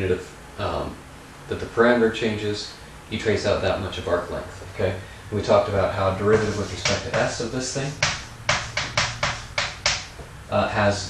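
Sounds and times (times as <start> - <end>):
chalk scratching on chalkboard: 6.2 - 10.1.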